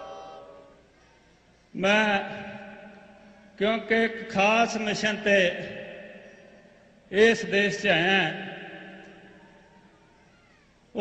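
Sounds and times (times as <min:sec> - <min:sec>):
hall echo of man's speech: 0:00.0 - 0:00.9, 0:01.7 - 0:09.8.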